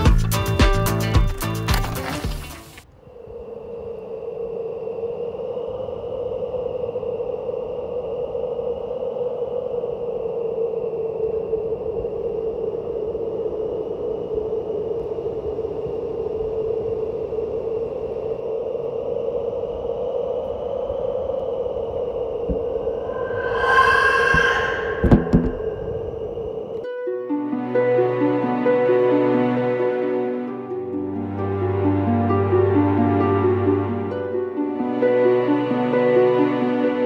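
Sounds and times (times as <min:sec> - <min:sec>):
eerie low drone: 0:20.6 - 0:27.0
faint high held tones: 0:22.8 - 0:26.8.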